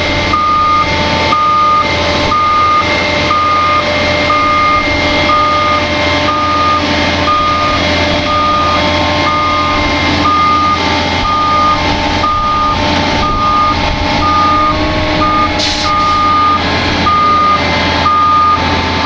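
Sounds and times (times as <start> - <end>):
excavator engine running: 0.0 - 19.0
backup alarm beeping: 0.3 - 18.7
short hiss: 15.6 - 16.2.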